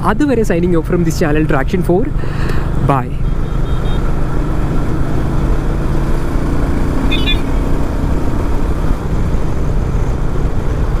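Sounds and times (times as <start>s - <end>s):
road and wind noise: 0.0s - 11.0s
high-pitched beeping: 7.0s - 7.8s.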